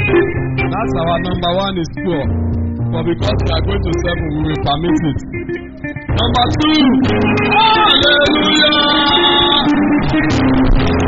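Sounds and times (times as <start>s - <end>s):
church band music: 0.0s - 11.0s
guitar and bass chords: 0.0s - 11.0s
percussion hits: 0.0s - 11.0s.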